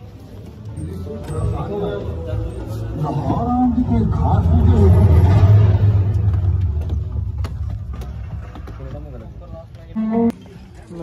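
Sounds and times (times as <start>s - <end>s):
deep low soundtrack rumble: 0.4s - 9.8s.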